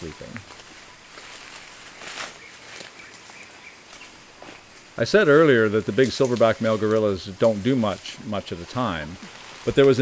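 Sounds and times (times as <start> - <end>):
high insect hum: 0.0 - 10.0.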